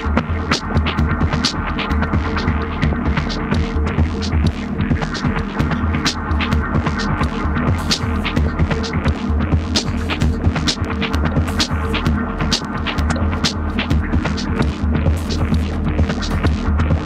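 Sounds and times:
electronic drone music: 0.0 - 17.0.

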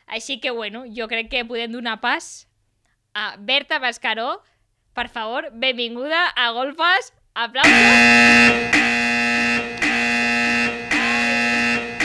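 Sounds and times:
door alarm buzzing: 7.6 - 12.0.

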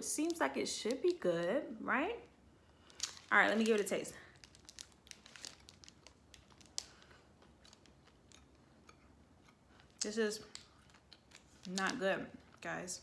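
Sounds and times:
foil wrapper crinkling: 2.8 - 8.6, 9.8 - 13.0
quiet chewing: 5.6 - 11.7.

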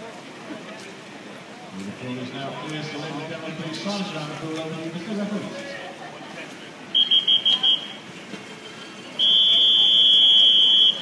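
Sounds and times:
referee's whistle blasts: 7.0 - 8.0, 9.2 - 11.0.

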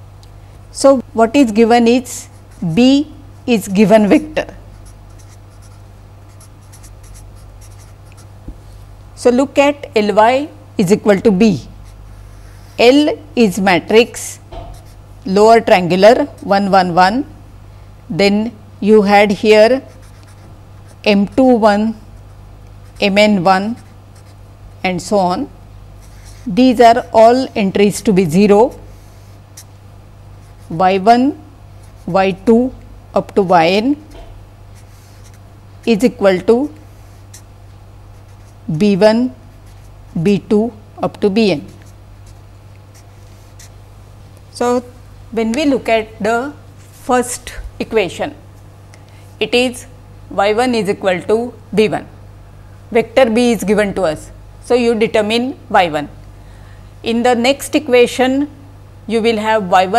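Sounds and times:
low electrical hum: 0.0 - 59.9
marker pen scratching on paper: 2.0 - 8.3, 14.6 - 15.0, 19.6 - 24.4, 26.0 - 27.2, 28.0 - 29.8, 30.4 - 31.1, 31.8 - 32.4, 34.7 - 37.5, 38.1 - 40.5, 41.4 - 43.8.

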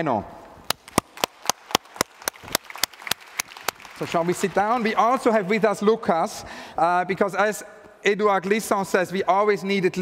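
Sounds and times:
sharp hand claps close up: 0.7 - 5.0
applause: 0.7 - 5.7.

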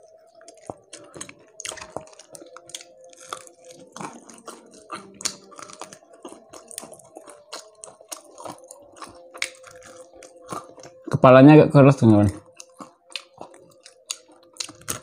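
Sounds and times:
chewing crispy fried fish: 0.0 - 11.4, 12.3 - 15.0.

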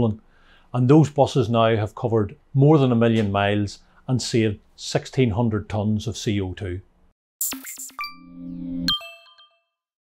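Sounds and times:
bell-like ding: 7.5 - 9.9.

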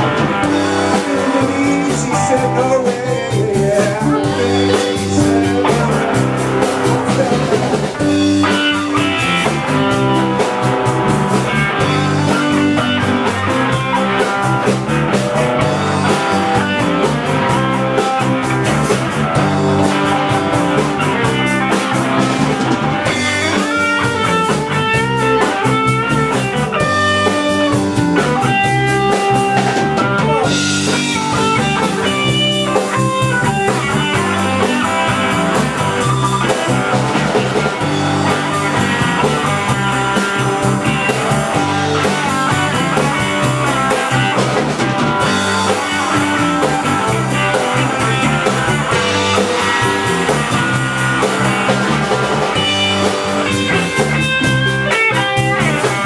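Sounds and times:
drum kit: 0.0 - 56.0
electric guitars: 0.0 - 56.0
lead guitar melodic runs: 0.0 - 56.0.

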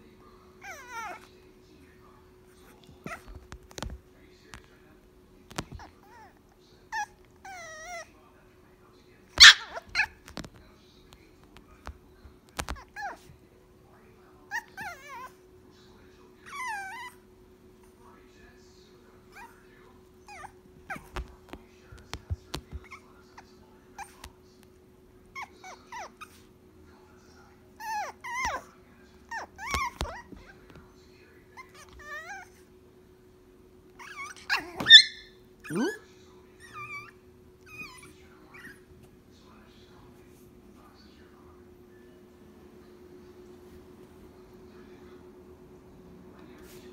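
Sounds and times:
puppy whining: 0.6 - 1.4, 2.6 - 4.0, 5.5 - 8.2, 9.3 - 10.4, 12.6 - 13.3, 14.5 - 15.5, 16.4 - 17.3, 19.3 - 24.3, 25.3 - 26.5, 27.7 - 30.7, 31.6 - 32.7, 33.9 - 38.9
puppy yipping: 9.4 - 10.3, 27.8 - 28.7, 29.3 - 30.5, 34.0 - 36.0, 36.6 - 38.8.

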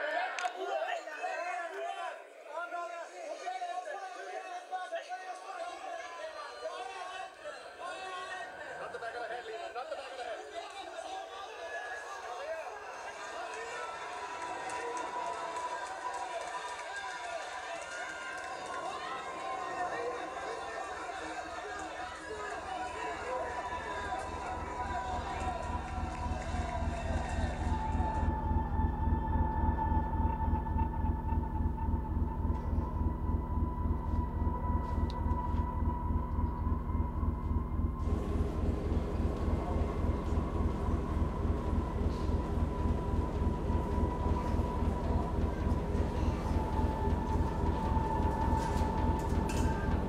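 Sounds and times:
murmur of voices: 0.0 - 31.6, 38.0 - 50.0
low pulsing beat: 23.1 - 50.0
sustained high tone: 23.7 - 50.0.

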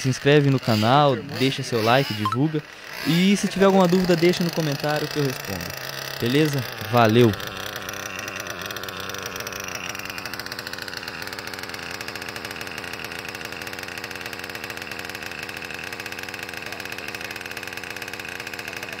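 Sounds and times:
model engine idling with rapid buzz: 0.0 - 19.0.

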